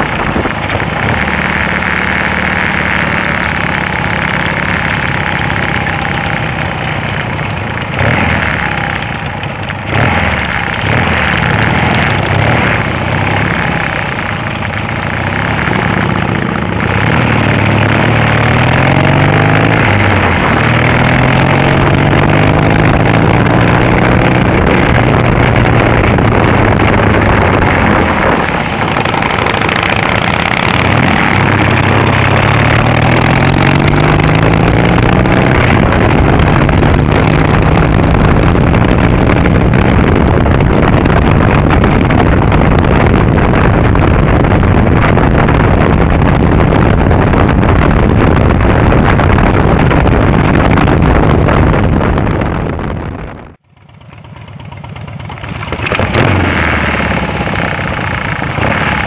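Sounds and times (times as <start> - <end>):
motorcycle engine while riding: 0.0 - 59.0
road noise: 0.0 - 59.0
rushing wind: 0.0 - 59.0.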